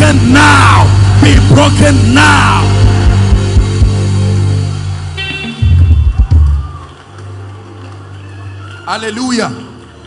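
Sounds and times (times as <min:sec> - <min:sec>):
live band music: 0:01.3 - 0:06.8.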